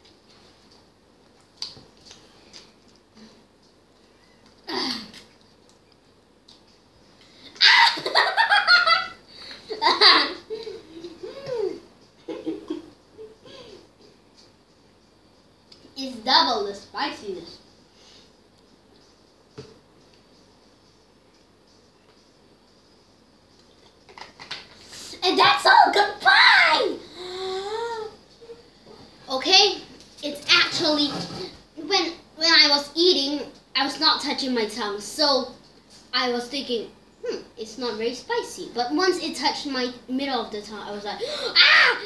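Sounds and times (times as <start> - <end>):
child laughing: 7.6 - 13.9.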